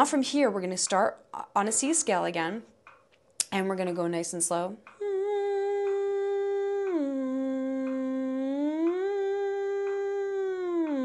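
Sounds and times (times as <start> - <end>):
faint ticks: 4.8 - 11.0
woman humming sliding scale: 4.9 - 11.0.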